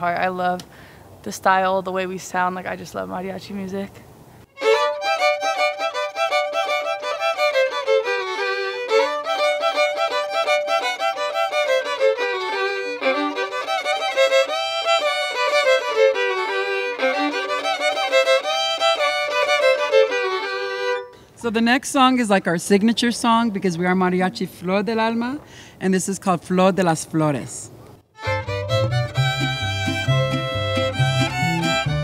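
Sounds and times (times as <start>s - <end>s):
violins playing melody in harmony: 4.6s - 21.2s, 28.2s - 32.0s.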